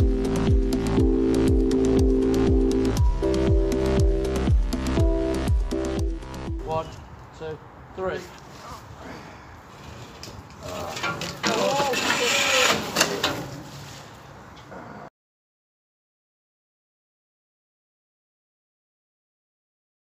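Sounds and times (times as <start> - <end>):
rope scraping on metal: 9.7 - 14.2.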